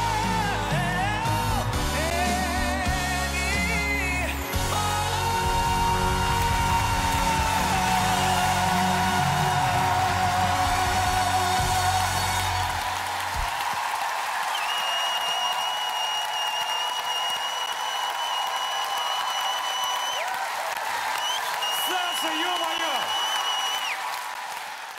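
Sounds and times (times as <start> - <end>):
song music: 0.0 - 13.7
studio audience applauding: 0.0 - 24.9.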